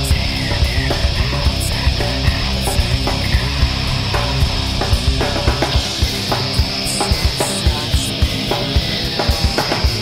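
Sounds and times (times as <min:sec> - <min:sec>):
kick drum and cymbal hits: 0:00.0 - 0:10.0
metal band playing: 0:00.0 - 0:10.0.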